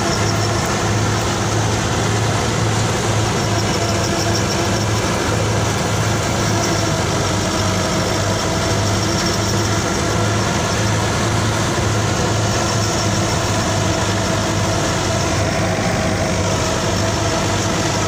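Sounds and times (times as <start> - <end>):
thresher churning: 0.0 - 18.0
tractor diesel engine running: 0.0 - 18.0.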